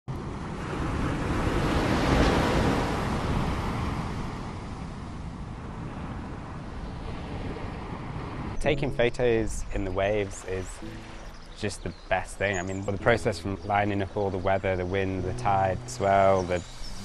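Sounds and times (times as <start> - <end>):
ocean wave breaking: 0.2 - 5.2, 7.0 - 17.0.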